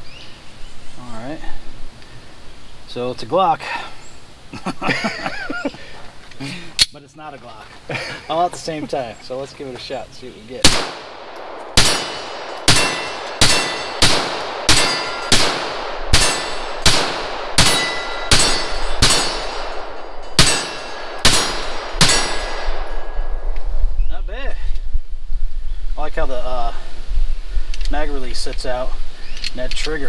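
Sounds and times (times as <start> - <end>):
pistol shots: 10.6 - 23.2.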